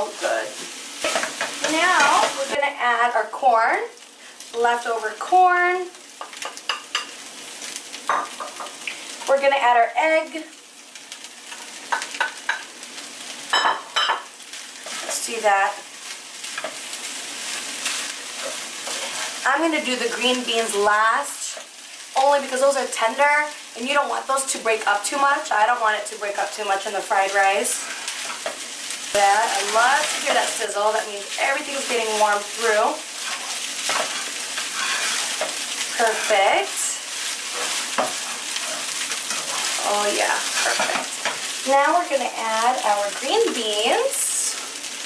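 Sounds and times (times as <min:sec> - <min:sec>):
fried rice sizzling in skillet: 0:00.0 - 0:45.0
utensil scraping pan: 0:14.8 - 0:15.3, 0:17.5 - 0:19.4, 0:33.1 - 0:41.6.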